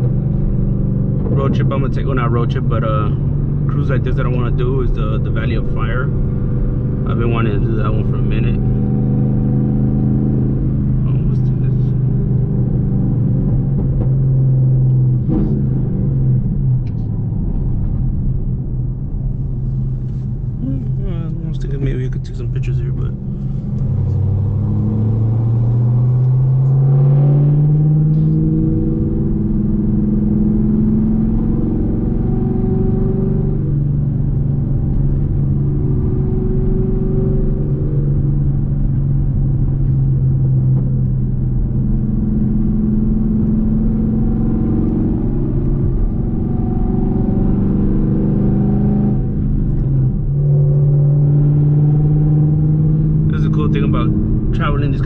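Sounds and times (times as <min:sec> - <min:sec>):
car engine and exhaust from cabin: 0:00.0 - 0:55.0.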